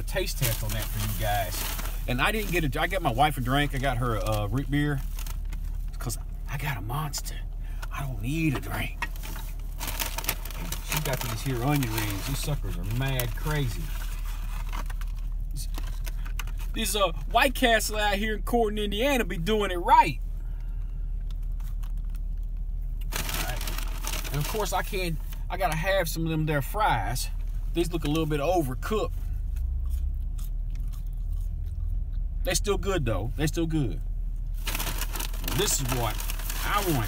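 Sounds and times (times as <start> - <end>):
paper bag rustling: 0.0 - 6.1, 8.3 - 16.8, 23.1 - 25.4, 34.6 - 37.0
low hum inside a car: 0.0 - 37.0
person chewing fries: 29.4 - 32.4.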